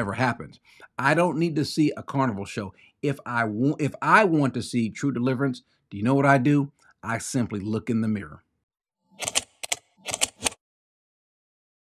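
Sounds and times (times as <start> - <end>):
sharp typewriter-like clicks: 9.2 - 10.6.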